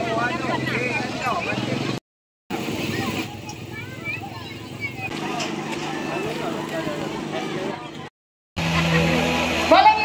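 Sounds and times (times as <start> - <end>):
crowd talking: 0.0 - 10.0.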